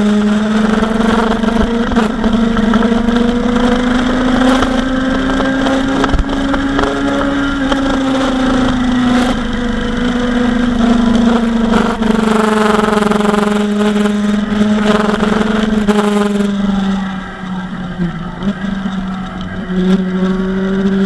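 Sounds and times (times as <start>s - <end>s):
motorcycle engine cruising: 0.0s - 21.0s.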